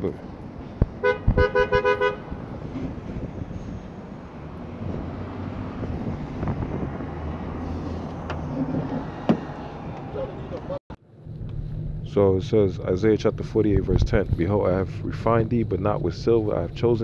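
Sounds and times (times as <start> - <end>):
two-tone horn toots: 1.0 - 2.4
low background rumble: 10.6 - 17.0.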